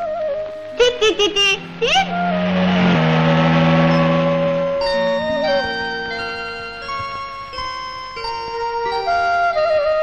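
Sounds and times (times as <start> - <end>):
background music: 0.0 - 10.0
car engine running: 0.4 - 8.4.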